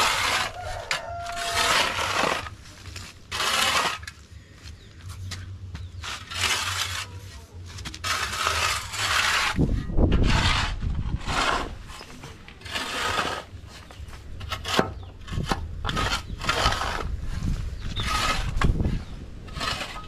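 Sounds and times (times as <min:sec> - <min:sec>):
metal hoe scraping dry soil: 0:00.0 - 0:04.4, 0:05.1 - 0:20.0.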